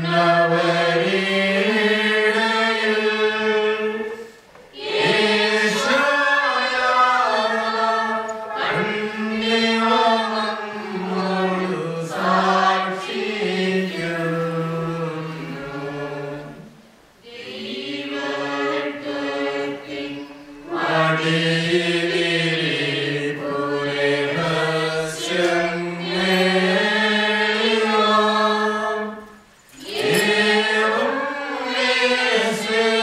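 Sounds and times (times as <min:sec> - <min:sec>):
liturgical chant: 0:00.0 - 0:33.0.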